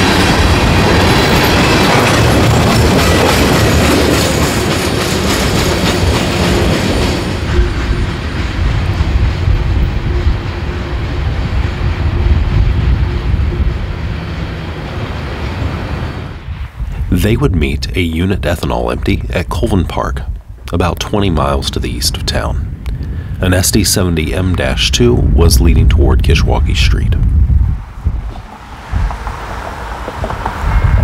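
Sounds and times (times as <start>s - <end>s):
train moving away on curved track: 0.0s - 19.1s, 27.3s - 31.0s
freight train rumbling past: 0.0s - 20.0s, 21.1s - 31.0s.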